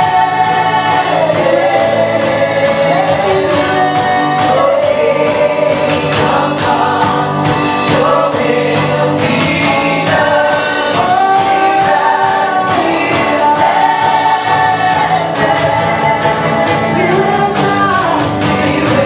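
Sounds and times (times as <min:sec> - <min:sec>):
band with steady beat: 0:00.0 - 0:19.0
congregation singing along: 0:00.0 - 0:19.0
strummed acoustic guitar: 0:00.0 - 0:19.0
woman singing: 0:00.0 - 0:19.0.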